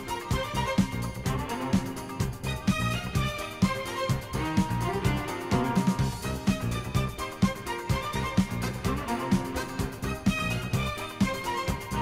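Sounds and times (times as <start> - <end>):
steady drum beat: 0.0 - 12.0.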